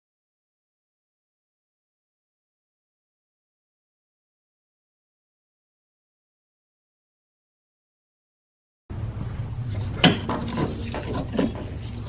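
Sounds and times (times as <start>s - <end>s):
metal parts clicking and rubbing: 9.7s - 12.0s.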